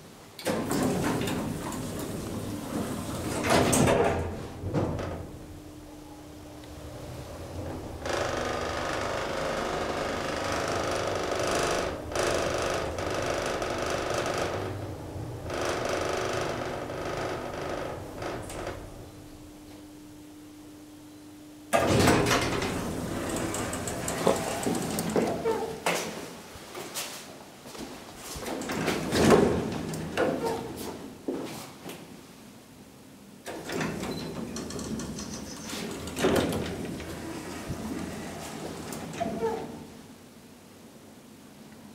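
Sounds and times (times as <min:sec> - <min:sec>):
sliding doors opening: 0:00.4 - 0:05.6, 0:06.3 - 0:19.4, 0:21.7 - 0:26.2, 0:28.3 - 0:31.0, 0:33.4 - 0:40.1
elevator hum: 0:00.4 - 0:25.9, 0:33.4 - 0:41.3.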